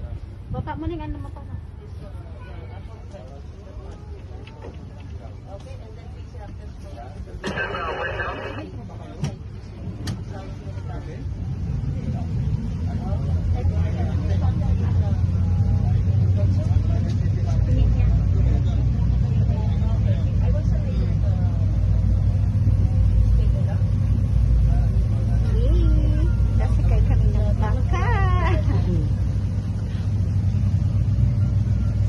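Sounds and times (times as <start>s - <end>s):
boat motor rumbling: 6.9s - 10.6s, 11.6s - 32.0s.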